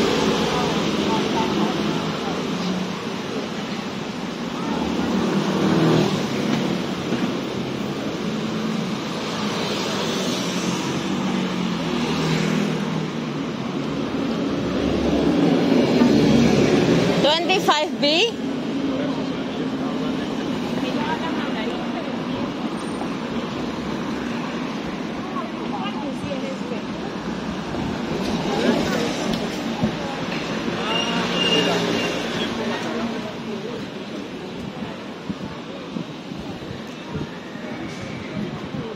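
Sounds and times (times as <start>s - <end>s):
cars driving by: 0.0s - 38.9s
voices: 0.0s - 38.9s.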